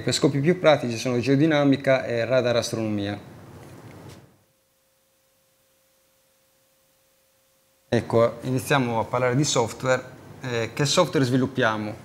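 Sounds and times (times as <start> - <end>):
faint steady pure tone: 0.0 - 12.0.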